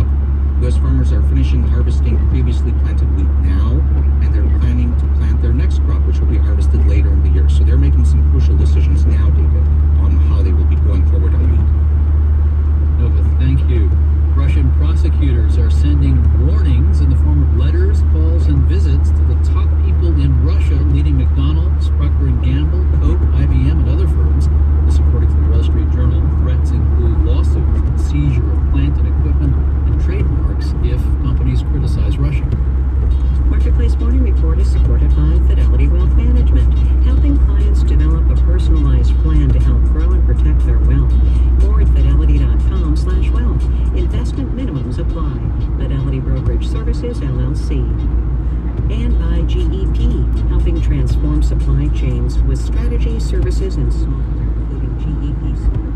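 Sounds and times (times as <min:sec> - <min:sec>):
muffled voice speaking: 0:00.0 - 0:11.8, 0:12.8 - 0:55.9
car road and engine rumble: 0:00.0 - 0:55.9.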